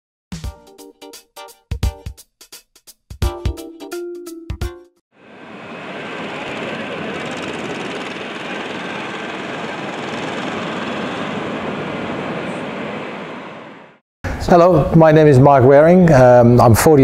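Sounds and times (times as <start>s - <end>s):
faint high whine: 5.2s - 13.9s
jet engine noise: 5.2s - 14.0s.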